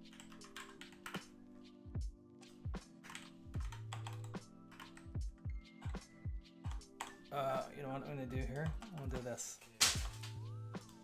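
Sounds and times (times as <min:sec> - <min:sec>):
lo-fi hip-hop music: 0:00.0 - 0:11.0.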